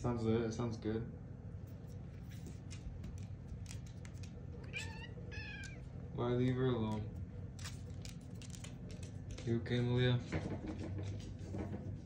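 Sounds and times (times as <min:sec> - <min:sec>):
cat meowing: 0:04.5 - 0:06.0.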